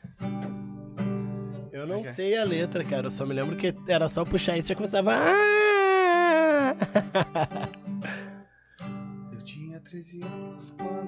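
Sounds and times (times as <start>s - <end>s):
man's high vocal wail: 5.2s - 6.8s.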